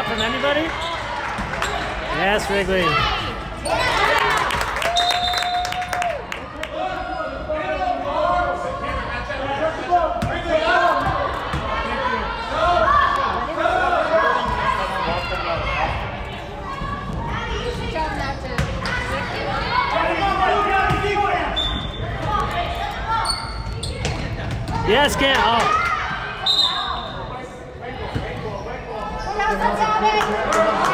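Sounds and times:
crowd shouting and talking: 0.0s - 30.9s.

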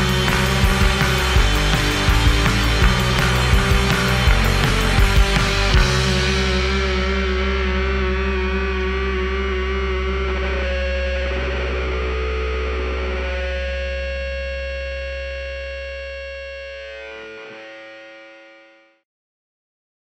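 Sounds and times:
low bass note: 0.0s - 17.0s
distorted electric guitar tones: 0.0s - 19.0s.

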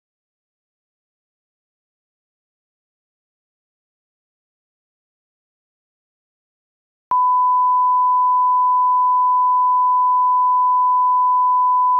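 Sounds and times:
steady sine tone: 7.1s - 11.9s.

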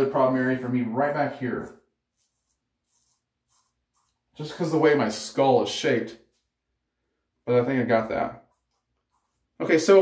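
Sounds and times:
razor scraping stubble: 0.3s - 4.8s.

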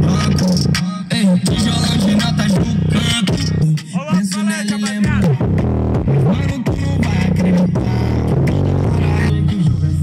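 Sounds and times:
funk song with heavy bass: 0.0s - 10.0s.

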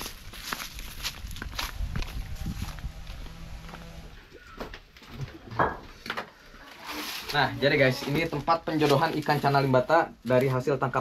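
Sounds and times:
footsteps on dirt path: 0.0s - 6.0s.

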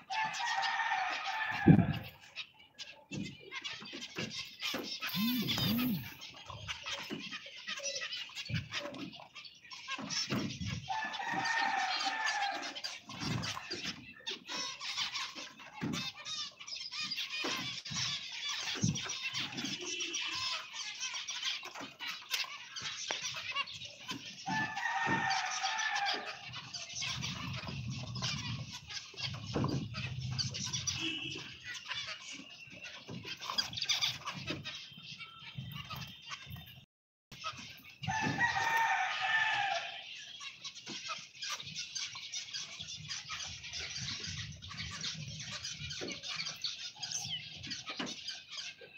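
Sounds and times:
finches chirping: 1.8s - 12.5s
rooster crowing: 10.9s - 12.8s, 24.5s - 26.4s, 38.1s - 40.0s.

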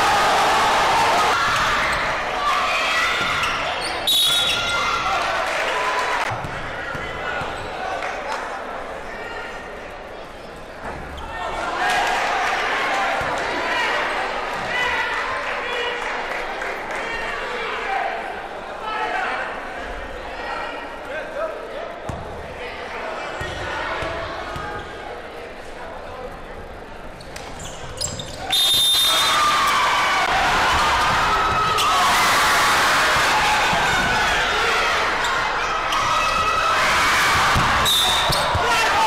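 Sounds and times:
voices in gym: 0.0s - 39.0s.

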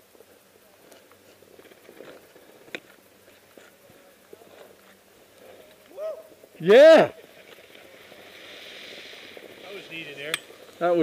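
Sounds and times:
skis sliding on snow: 0.0s - 11.0s.

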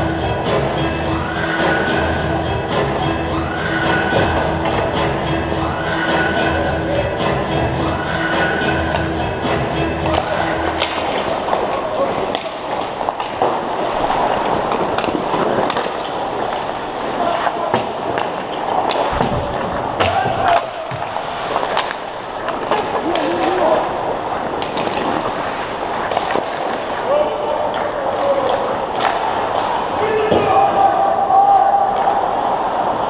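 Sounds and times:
players shouting: 1.1s - 9.2s, 10.1s - 24.6s, 26.8s - 33.0s
skates scraping on ice: 10.0s - 30.4s
sticks clacking on puck and ice: 10.0s - 30.5s.

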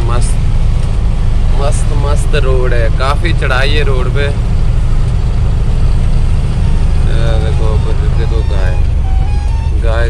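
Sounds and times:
road noise: 0.0s - 10.0s
truck engine under load: 0.0s - 10.0s.

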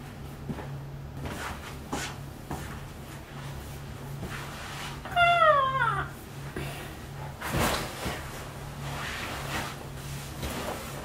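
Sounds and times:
high-pitched meow-like cry: 5.1s - 6.2s.

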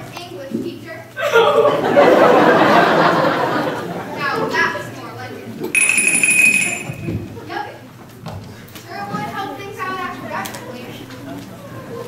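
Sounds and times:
school bell ringing: 5.8s - 7.4s.

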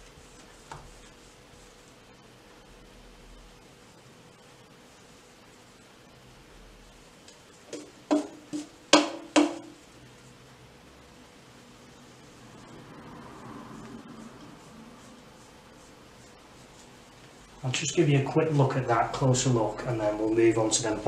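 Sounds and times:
sharp knocks: 7.7s - 9.7s.

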